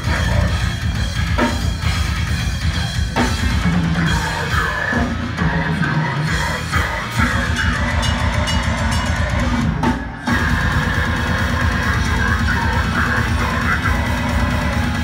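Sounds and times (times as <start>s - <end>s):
distorted guitars: 0.0s - 15.0s
pounding drum kit: 0.0s - 15.0s.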